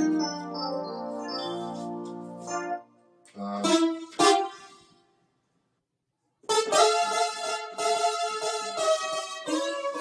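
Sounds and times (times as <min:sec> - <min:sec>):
electronic keyboard chords: 0:00.0 - 0:04.8, 0:06.4 - 0:10.0.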